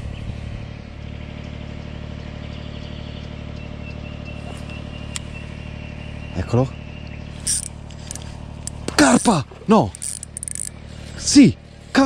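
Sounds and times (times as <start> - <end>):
fishing reel clicks: 7.4 - 10.8
fishing reel scratching: 7.4 - 10.8.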